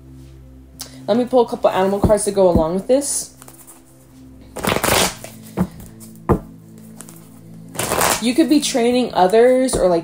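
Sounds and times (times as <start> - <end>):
soft background music: 0.0 - 10.0
cards being shuffled: 3.4 - 3.9, 4.6 - 5.7, 6.3 - 8.2
cards snapping: 4.6 - 5.3, 7.8 - 8.2.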